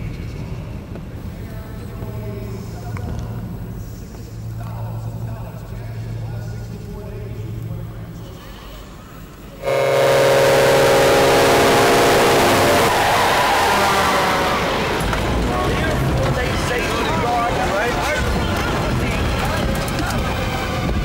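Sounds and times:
vehicle horn blaring: 9.6 - 15.1.

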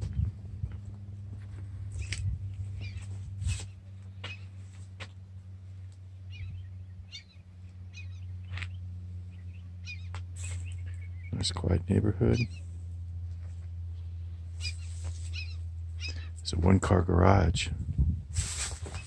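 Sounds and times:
steady low hum: 0.0 - 19.0
small birds chirping: 0.1 - 16.8.

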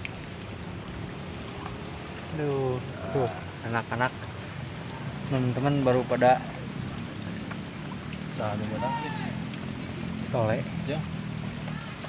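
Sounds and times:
raindrop ticks: 0.0 - 12.0
steady rain falling: 0.0 - 12.0.

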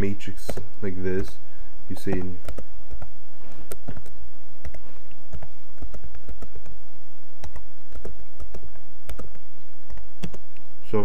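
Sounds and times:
computer keyboard key clicks: 7.4 - 10.4.

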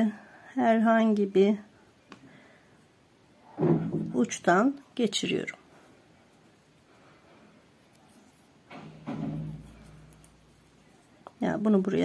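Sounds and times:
person speaking: 10.6 - 12.0.

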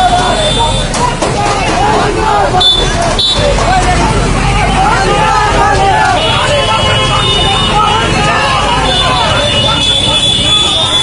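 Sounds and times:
crowd shouting and talking: 0.0 - 11.0
truck engine rumble: 0.0 - 11.0.

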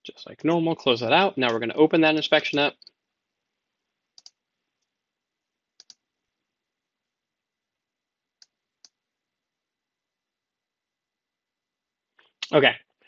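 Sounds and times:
computer mouse clicks: 4.2 - 4.9, 5.8 - 6.0, 8.4 - 9.0.

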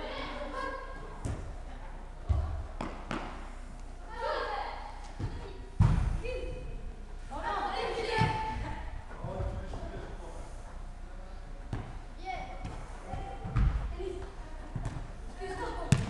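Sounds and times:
football thumping: 5.2 - 6.2, 11.7 - 12.0, 12.6 - 13.9.

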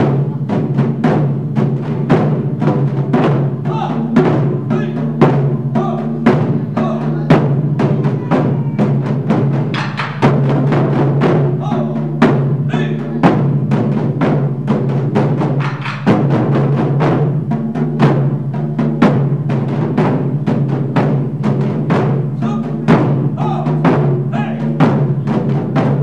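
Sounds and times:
taiko drums playing: 0.0 - 26.0.

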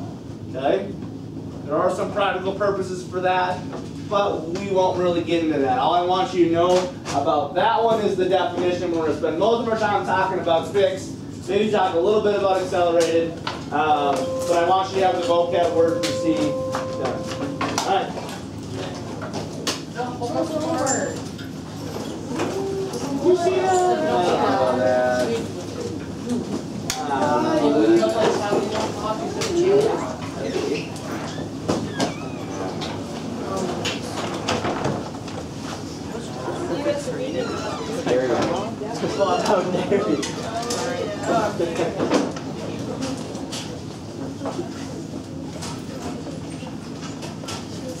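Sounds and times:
students talking overlapping: 8.0 - 34.6, 35.7 - 48.0.

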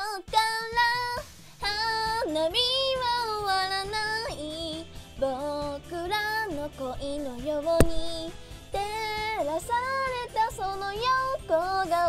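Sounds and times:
karaoke backing track: 0.0 - 12.0
woman singing pop song: 0.0 - 12.0.

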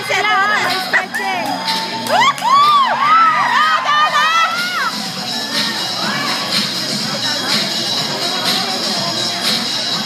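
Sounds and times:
dance music: 0.0 - 10.0
people cheering and whooping: 0.4 - 6.6.

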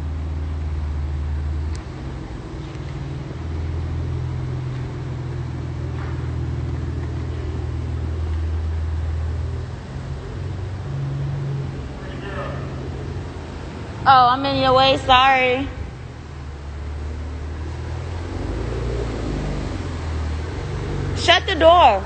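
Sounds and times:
low mechanical drone: 0.0 - 22.0.

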